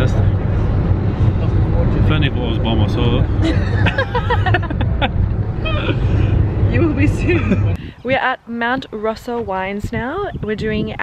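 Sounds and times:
bus engine rumble: 0.0 - 11.0
voices talking: 5.5 - 11.0.

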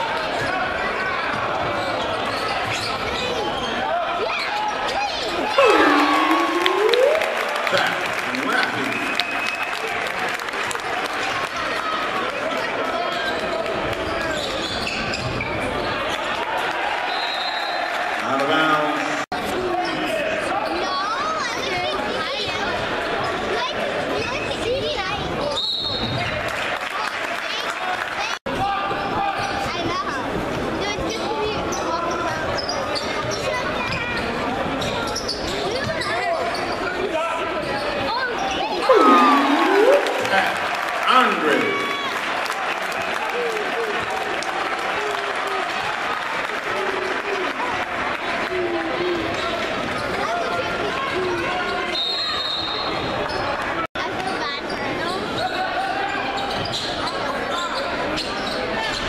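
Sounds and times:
crowd voices hubbub: 0.0 - 59.0
shoe squeaks: 1.8 - 3.8, 32.6 - 36.9
people shouting: 5.4 - 7.8, 38.8 - 42.1.

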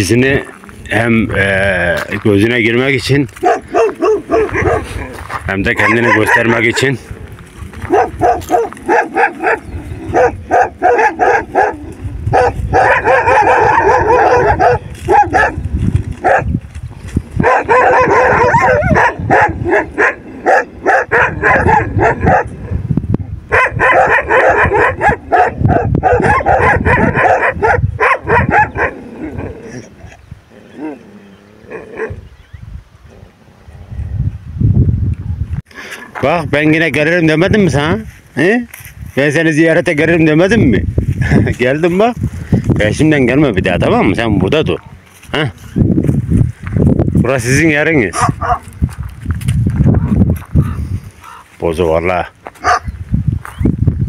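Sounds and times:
dogs barking: 3.3 - 7.0, 7.8 - 15.6, 16.2 - 16.5, 17.4 - 22.8, 23.5 - 29.5, 48.1 - 48.7, 52.6 - 53.0.

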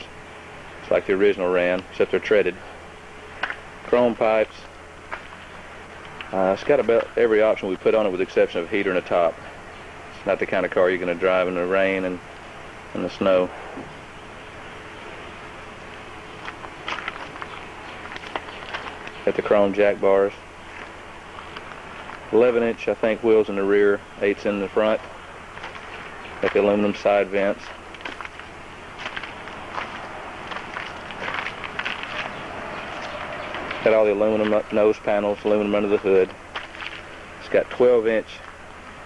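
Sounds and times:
faint steady hum: 0.0 - 39.0
outdoor background noise: 0.0 - 39.0
steady background hiss: 0.0 - 39.0
footsteps on asphalt: 5.0 - 7.2, 14.4 - 19.6, 20.4 - 22.3, 24.9 - 34.8, 35.4 - 37.3, 38.4 - 38.7.

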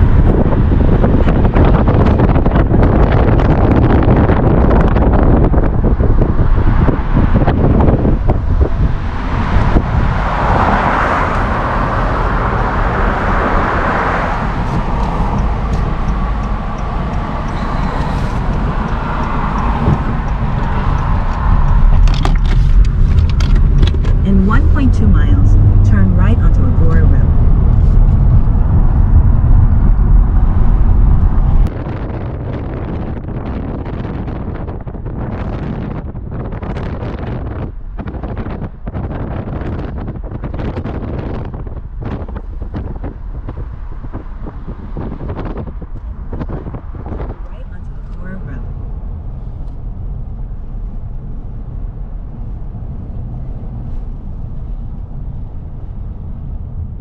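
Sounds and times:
car road noise: 0.0 - 57.0
heavy low rumble: 0.0 - 57.0
wind on microphone: 0.0 - 57.0.

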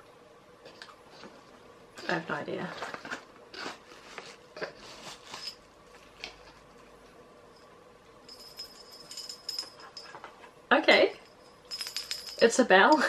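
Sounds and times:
small bell jingling: 7.5 - 10.3, 10.9 - 13.0.

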